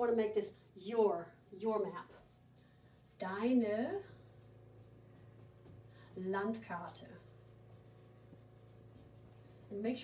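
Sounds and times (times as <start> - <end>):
low steady hum: 0.0 - 10.0
marker writing on whiteboard: 4.3 - 10.0.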